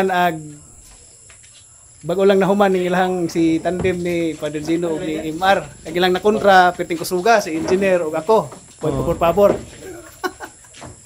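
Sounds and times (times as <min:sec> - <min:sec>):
crickets chirring: 0:00.0 - 0:11.0
man's voice: 0:02.1 - 0:10.1.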